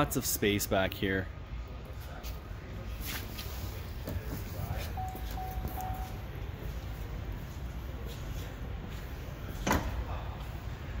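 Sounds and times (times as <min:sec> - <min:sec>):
car liftgate closing with thud: 0:09.6 - 0:10.0.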